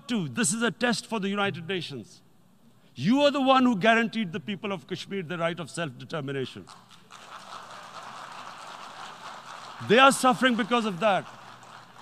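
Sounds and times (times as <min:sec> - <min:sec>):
audience noise in a hall: 0:06.7 - 0:12.0.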